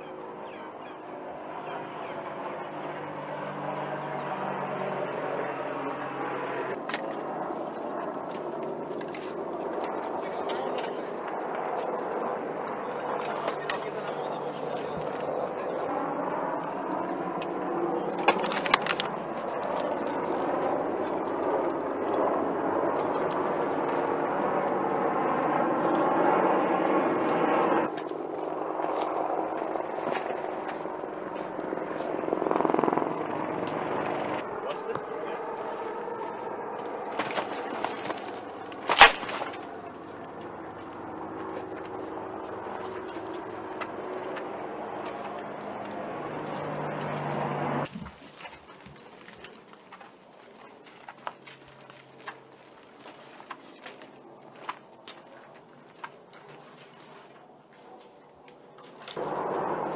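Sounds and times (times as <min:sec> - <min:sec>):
steady background noise: 0:00.0 - 0:59.9
indistinct voices: 0:09.8 - 0:22.5.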